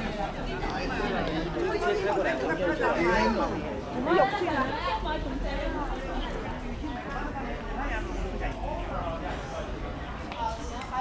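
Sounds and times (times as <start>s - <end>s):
crowd of pedestrians: 0.0s - 11.0s
people chatting: 0.0s - 11.0s.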